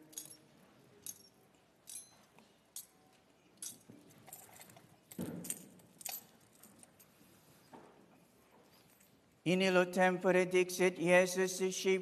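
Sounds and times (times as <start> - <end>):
thurible chains clinking: 0.0 - 7.3.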